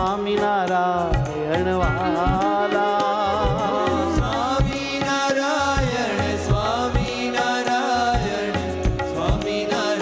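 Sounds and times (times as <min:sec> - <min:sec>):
low drum beat: 0:00.0 - 0:09.7
man singing devotional song: 0:00.0 - 0:10.0.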